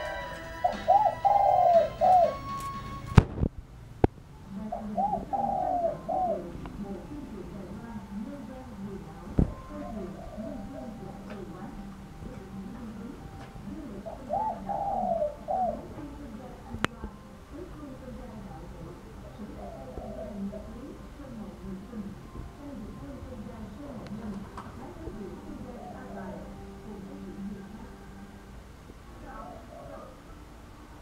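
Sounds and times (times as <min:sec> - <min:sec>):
dove cooing: 0:00.0 - 0:03.1, 0:04.5 - 0:16.8, 0:17.6 - 0:28.4, 0:29.2 - 0:30.3.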